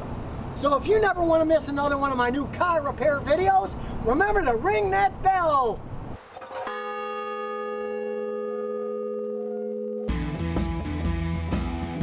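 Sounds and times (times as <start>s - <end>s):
large bell ringing: 6.4s - 10.2s.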